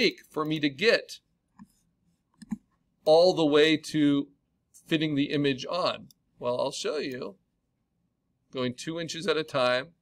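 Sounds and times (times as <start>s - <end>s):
computer mouse clicks: 1.6s - 2.7s.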